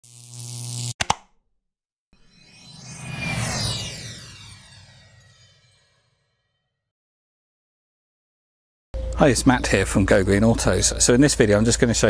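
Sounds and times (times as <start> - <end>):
rising swell with hum and hiss: 2.2 - 6.1.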